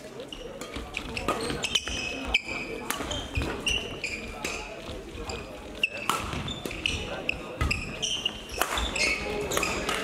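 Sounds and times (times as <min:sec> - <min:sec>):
court shoes squeaking: 0:00.0 - 0:10.0
hubbub of voices: 0:00.0 - 0:10.0
racket hitting shuttlecock: 0:02.8 - 0:04.8, 0:05.8 - 0:10.0.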